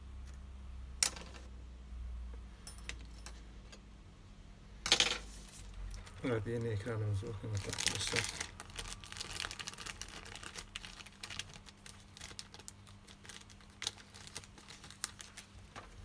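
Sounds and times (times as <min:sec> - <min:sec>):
plastic packaging crinkling: 0:05.6 - 0:16.0.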